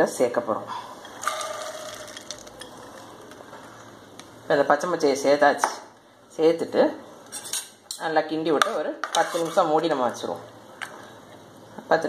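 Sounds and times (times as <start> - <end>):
beans dropping into a pot: 1.1 - 4.4.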